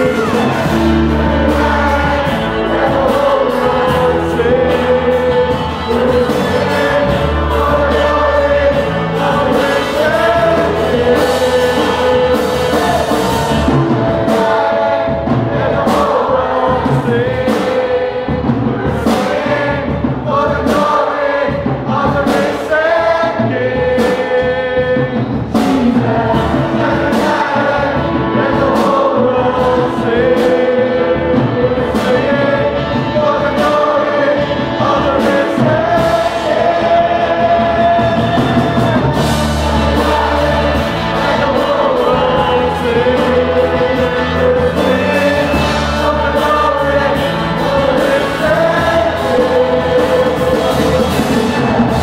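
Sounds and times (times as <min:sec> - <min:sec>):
steady low bass: 0:00.0 - 0:17.5, 0:34.4 - 0:52.0
amplified lead vocals: 0:00.0 - 0:52.0
congregation singing: 0:00.0 - 0:52.0
worship singers on microphones: 0:00.0 - 0:52.0.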